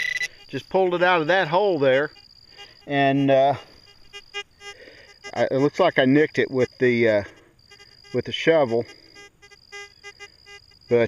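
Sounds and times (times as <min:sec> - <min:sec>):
high-pitched electronic whine: 0:00.0 - 0:11.0
short low beeps: 0:00.0 - 0:11.0.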